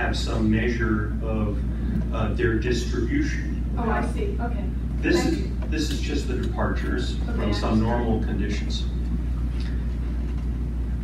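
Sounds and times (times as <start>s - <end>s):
steady low room hum: 0.0s - 11.0s
person speaking: 3.2s - 6.0s, 6.8s - 8.6s.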